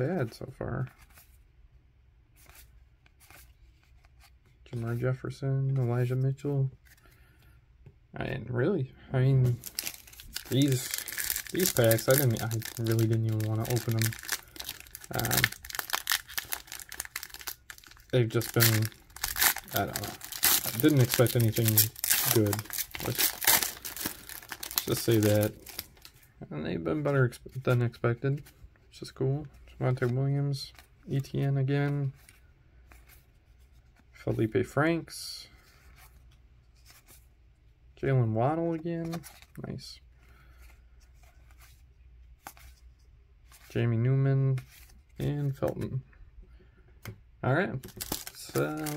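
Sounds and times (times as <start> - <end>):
cards rustling: 2.3 - 5.0, 9.3 - 28.6, 39.0 - 43.8, 47.8 - 48.9
plastic wrapper crinkling: 9.4 - 26.2, 47.8 - 48.9.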